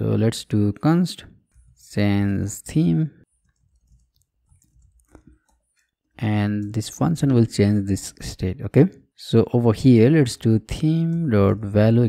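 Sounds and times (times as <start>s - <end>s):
keyboard keys clicking: 3.2s - 7.5s.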